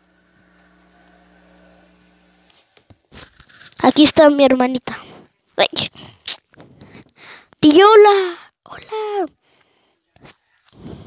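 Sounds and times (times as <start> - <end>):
faint machine-like hum: 0.0 - 3.8.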